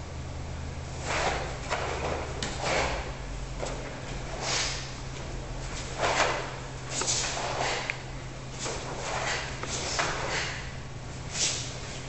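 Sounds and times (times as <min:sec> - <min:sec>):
steady low hum: 0:00.0 - 0:12.0
cloth swish and feet sliding: 0:05.6 - 0:07.9.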